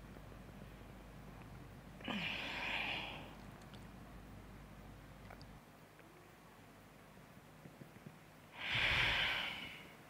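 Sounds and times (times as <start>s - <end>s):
person sighing: 2.0s - 3.3s.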